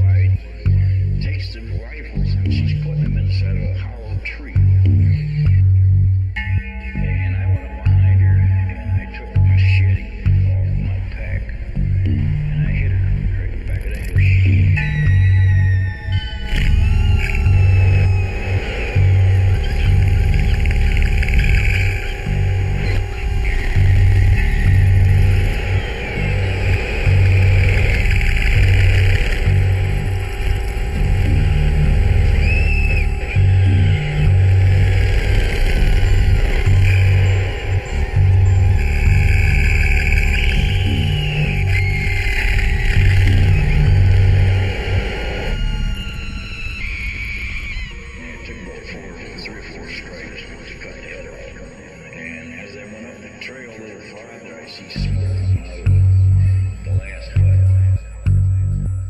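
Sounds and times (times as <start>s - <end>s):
pulsing deep bass: 0.0s - 52.6s, 54.9s - 59.0s
steady droning tone: 0.0s - 59.0s
squealing synth glides: 14.8s - 52.4s.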